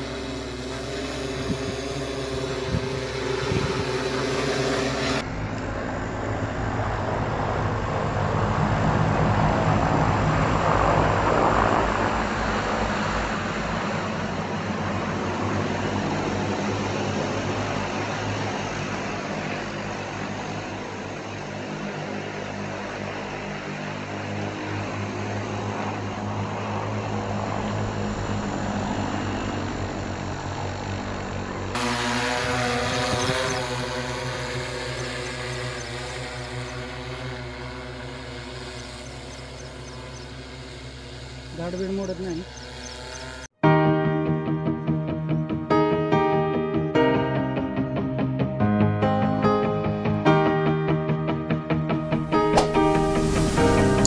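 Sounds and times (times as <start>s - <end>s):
drone propellers buzzing: 0.0s - 43.6s, 51.5s - 54.0s.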